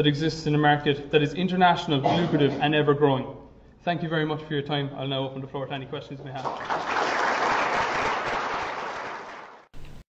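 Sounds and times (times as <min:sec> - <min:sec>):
audience applauding: 0:06.4 - 0:09.7.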